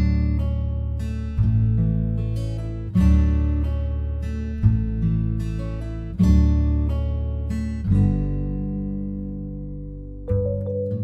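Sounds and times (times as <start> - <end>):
guitar chord ringing: 8.6 - 11.0.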